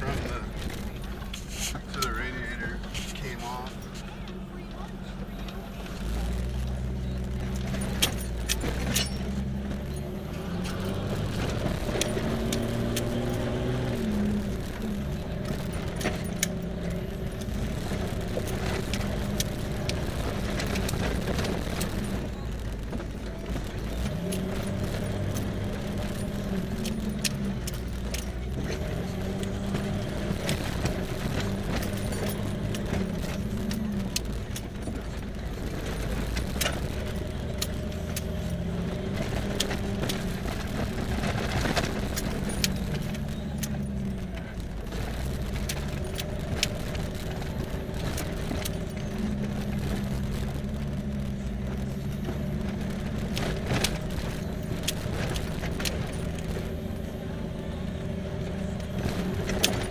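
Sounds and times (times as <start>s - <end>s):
cab clicks and rattles: 0.0s - 59.9s
off-road vehicle engine revving: 0.0s - 59.9s.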